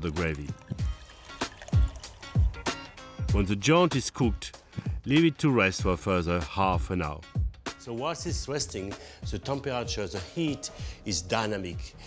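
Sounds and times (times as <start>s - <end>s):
background music: 0.0s - 12.0s
water pouring into a roasting tin: 0.5s - 2.9s.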